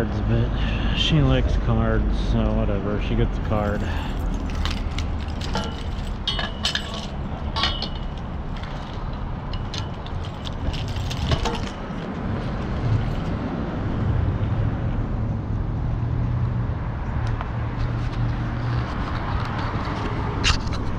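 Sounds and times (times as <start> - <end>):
street traffic: 0.0 - 20.9
vehicle engine humming: 0.0 - 20.9
sharp clicks and rattles: 3.6 - 13.4.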